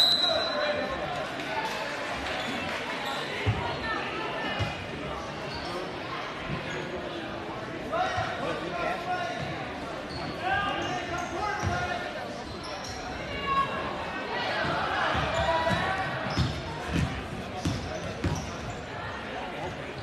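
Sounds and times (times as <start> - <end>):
voices in large gym: 0.0 - 20.0.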